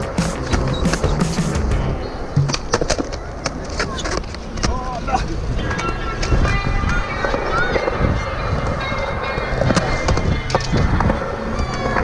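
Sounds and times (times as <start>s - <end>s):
music playing: 0.0s - 3.0s, 5.5s - 12.0s
skateboard clacks: 0.0s - 12.0s
skateboard wheels rolling on concrete: 0.0s - 12.0s.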